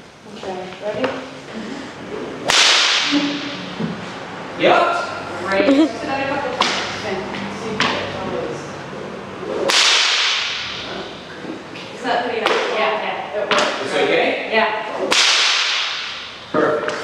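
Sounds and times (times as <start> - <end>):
whip cracking: 2.5 - 3.5, 9.7 - 10.8, 15.1 - 16.3.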